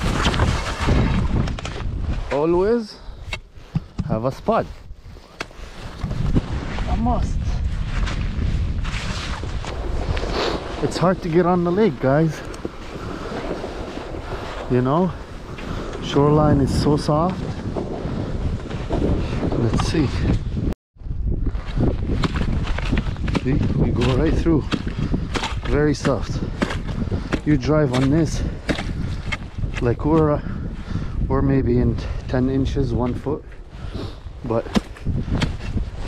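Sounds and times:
wind buffeting microphone: 0:00.0 - 0:36.0.

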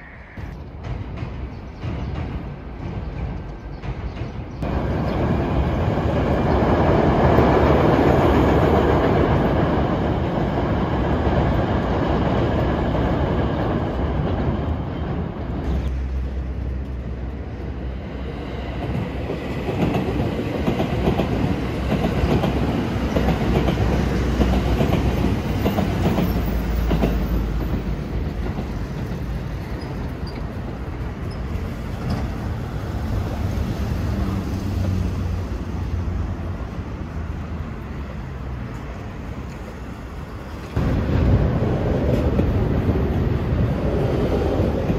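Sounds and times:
express train running past: 0:00.0 - 0:44.9
trains passing: 0:00.0 - 0:44.9.

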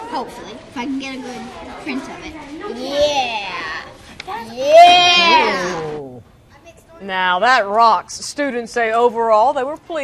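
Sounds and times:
child's high-pitched excited cry: 0:04.5 - 0:05.8.

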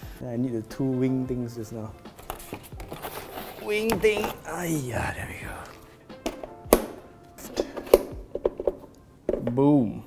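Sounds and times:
cardboard and plastic rustling: 0:02.1 - 0:04.8.

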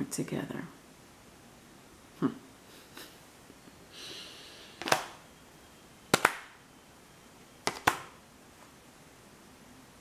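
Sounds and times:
cards slapped on a table: 0:04.8 - 0:05.2, 0:06.1 - 0:06.6, 0:07.6 - 0:08.2.

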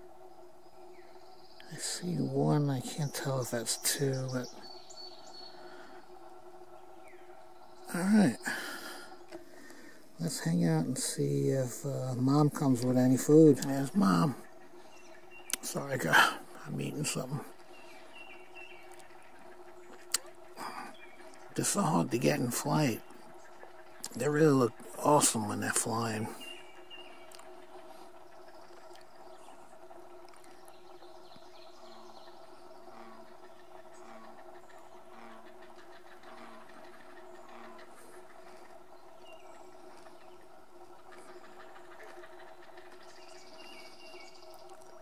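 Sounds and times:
faint steady hum: 0:00.0 - 0:45.0
heron chicks begging calls: 0:12.3 - 0:45.0.

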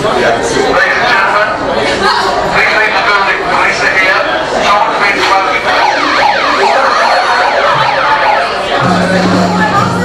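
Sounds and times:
megaphone siren wailing: 0:04.8 - 0:09.6.

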